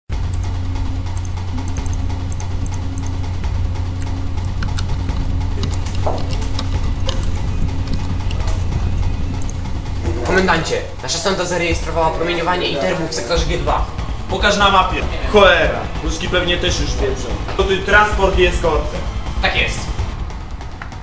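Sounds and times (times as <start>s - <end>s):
suspenseful film score drone: 0.1s - 21.0s.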